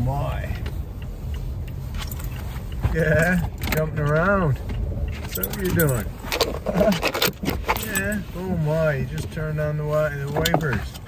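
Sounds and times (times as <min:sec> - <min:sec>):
windshield wipers: 0:00.0 - 0:11.0
collar tags jangling: 0:01.9 - 0:04.4, 0:05.1 - 0:08.8
dog moving with clicks and scrapes: 0:01.9 - 0:08.5.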